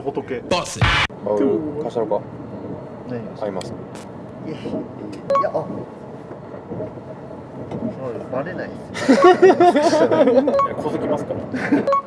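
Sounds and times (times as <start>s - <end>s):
train rumbling inside carriage: 1.2s - 12.0s.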